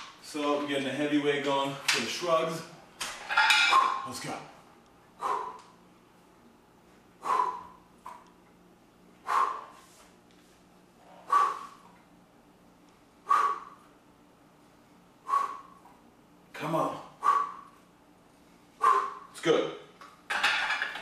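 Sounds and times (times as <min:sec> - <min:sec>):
man exhaling forcefully: 0:11.3 - 0:11.9.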